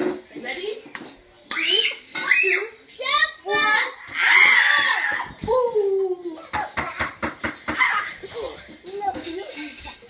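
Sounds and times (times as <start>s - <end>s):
children shrieking: 4.0s - 5.4s.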